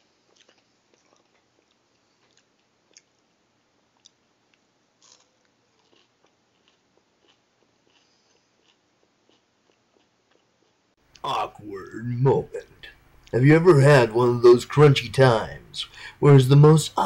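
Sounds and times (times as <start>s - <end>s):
person chewing crunchy food: 0.0s - 3.3s, 3.9s - 11.2s.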